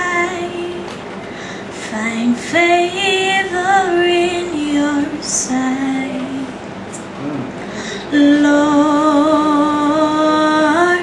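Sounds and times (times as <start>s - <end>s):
woman singing: 0.0s - 1.0s, 1.8s - 6.6s, 8.1s - 11.0s.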